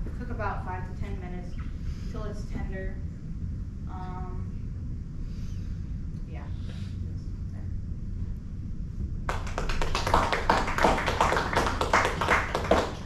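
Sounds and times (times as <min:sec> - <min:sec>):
small audience clapping: 0:09.3 - 0:13.0.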